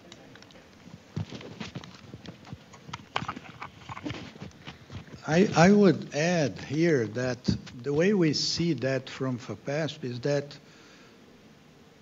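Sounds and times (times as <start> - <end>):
microphone handling noise: 0.8 - 7.9.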